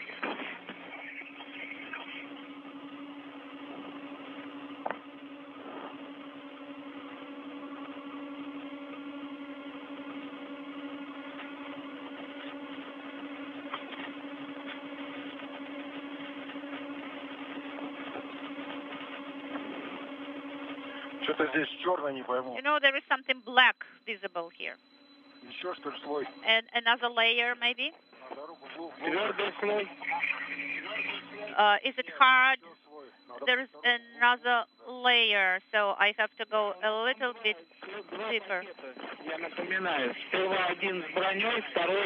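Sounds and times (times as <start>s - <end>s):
low droning tone: 0.0s - 42.0s
radio channel hum and hiss: 0.0s - 42.0s.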